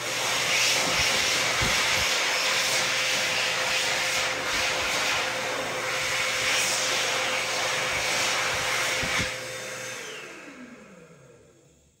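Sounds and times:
hand dryer motor winding down: 0.0 - 11.7.

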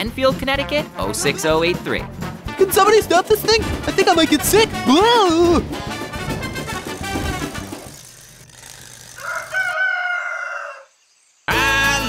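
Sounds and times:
music: 0.0 - 7.9, 11.5 - 12.0
rooster crowing: 9.0 - 11.2.

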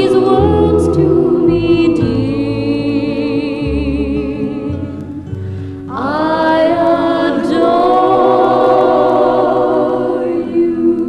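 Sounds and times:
choir holding a chord: 0.0 - 5.3, 5.9 - 11.0
woman singing with vibrato: 0.0 - 5.3, 5.9 - 11.0.

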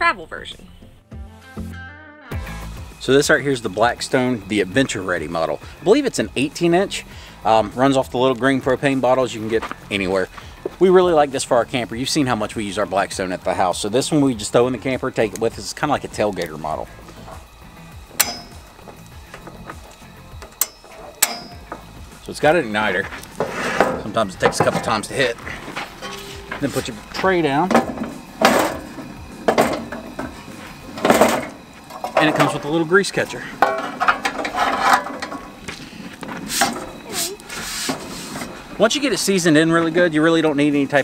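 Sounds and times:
soft background music: 0.0 - 35.3
sharp metallic clinks: 18.1 - 18.7, 20.4 - 21.9, 25.9 - 27.7
metal griddle plate clicking and scraping: 23.3 - 32.7, 33.6 - 35.6.

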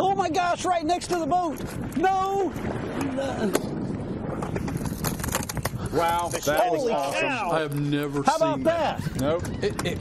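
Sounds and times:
wind and water noise: 0.0 - 10.0
fish thrashing and splashing: 4.4 - 6.6.

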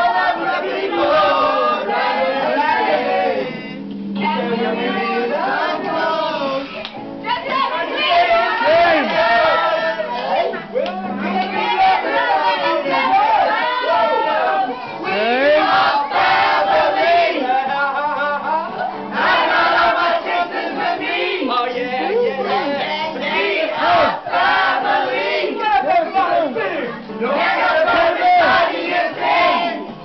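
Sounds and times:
group of adults singing: 0.0 - 30.0.

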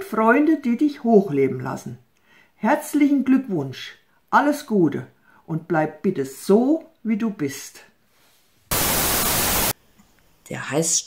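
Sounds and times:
burst of static hiss: 8.7 - 9.8.

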